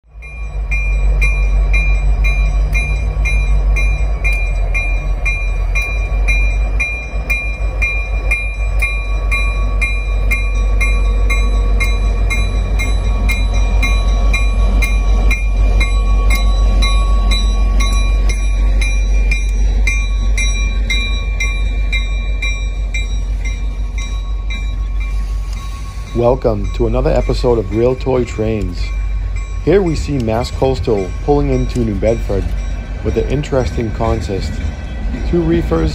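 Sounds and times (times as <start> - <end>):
freight train rumbling past: 0.0 - 35.9.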